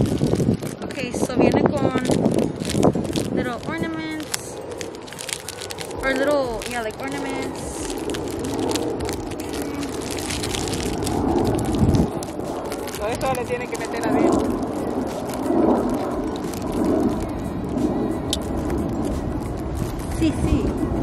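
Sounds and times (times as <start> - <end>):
wind buffeting microphone: 0.0 - 21.0
muffled voices talking: 5.9 - 8.0, 11.9 - 18.3.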